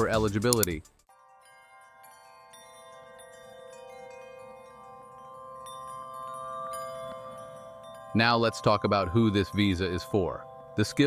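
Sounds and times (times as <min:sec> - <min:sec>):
sustained bell tones music: 0:01.1 - 0:11.0.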